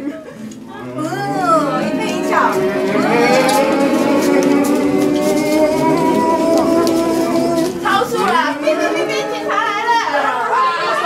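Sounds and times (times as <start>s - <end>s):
group of people talking and calling out: 0.1s - 11.0s.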